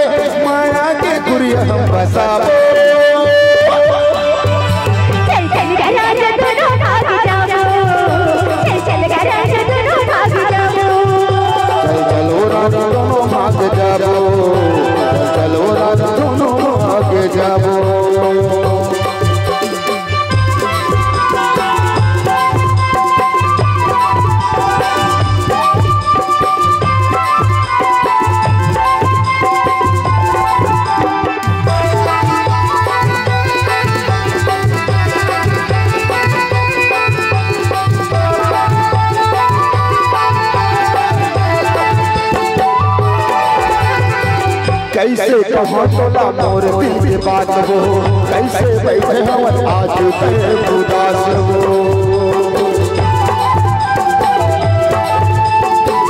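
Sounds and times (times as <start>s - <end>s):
keyboard melody: 0.0s - 56.0s
steady drum beat: 0.0s - 56.0s.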